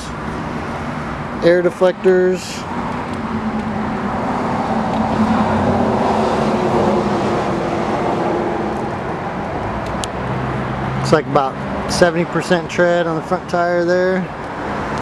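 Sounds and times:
vehicle passing by: 0.0 - 13.1.

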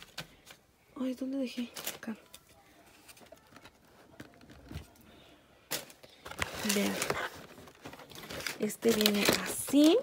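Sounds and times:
plastic wrap crinkling: 5.7 - 10.0.

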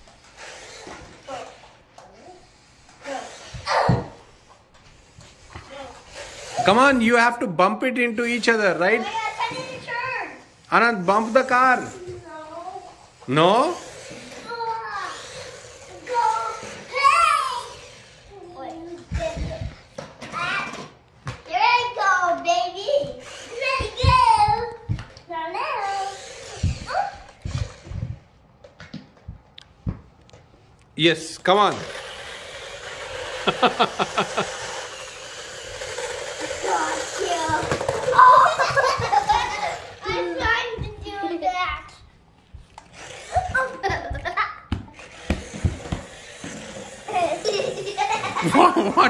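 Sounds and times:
children shouting and squealing: 0.9 - 4.3, 14.1 - 19.7, 21.5 - 27.9, 36.2 - 41.6
bare feet thumping on wooden floor: 28.8 - 30.2
people laughing: 33.4 - 34.6, 38.3 - 39.8, 47.2 - 49.0.

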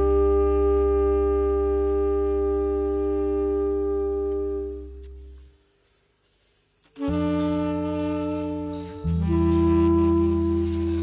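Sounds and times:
reed horns holding chord: 0.0 - 5.1, 7.0 - 11.0.

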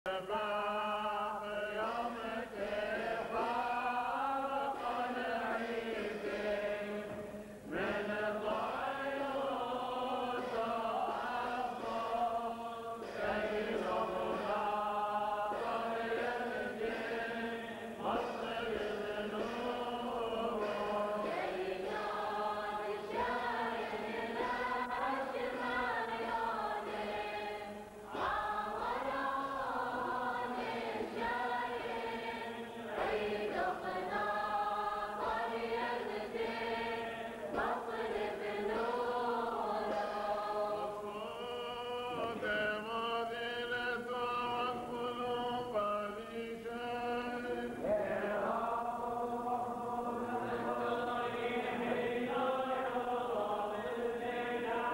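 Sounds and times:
men singing chant: 0.1 - 54.9.

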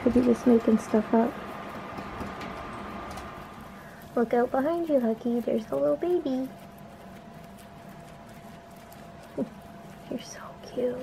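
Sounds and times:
guinea pigs rustling in hay: 0.0 - 11.0
quiet room hum: 0.0 - 11.0.

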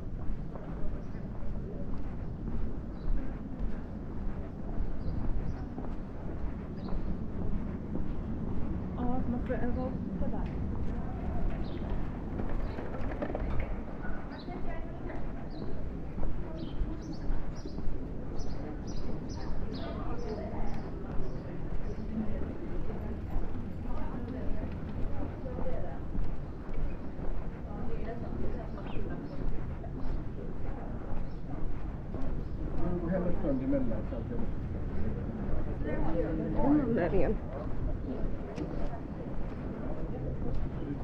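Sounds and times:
faint voices: 0.0 - 41.0
street noise: 0.0 - 41.0
small birds chirping: 4.4 - 7.2, 14.0 - 22.3, 31.1 - 34.4.

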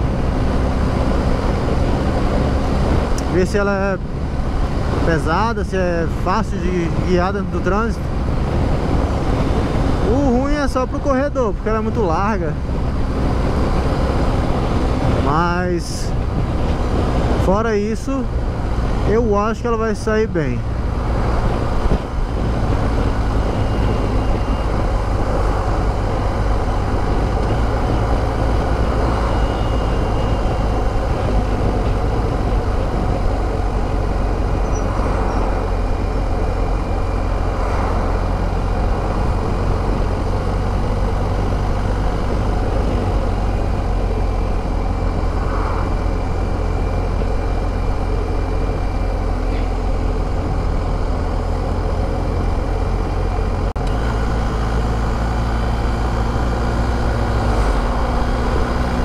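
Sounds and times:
motorcycle engine rumbling: 0.0 - 59.0
wind and road noise: 0.0 - 59.0.

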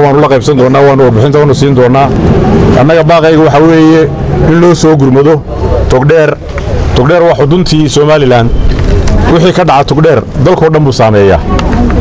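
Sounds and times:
man speaking: 0.0 - 2.2, 2.8 - 8.6, 9.2 - 11.5.

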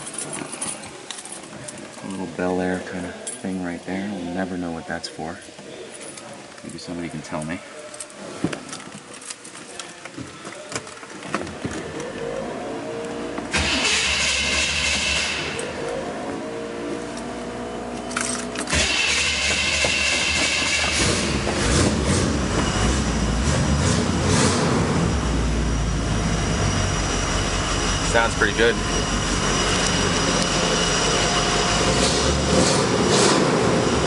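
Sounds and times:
car engine starting and running: 11.8 - 34.0.

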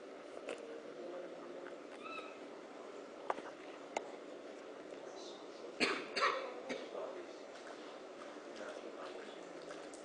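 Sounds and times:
faint room noise: 0.0 - 10.0
person coughing: 5.8 - 7.0.

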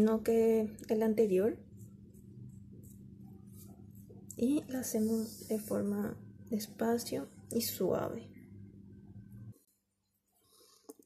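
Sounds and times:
low hum: 0.0 - 9.7
paintbrush scratching on seed pod: 1.6 - 5.9.

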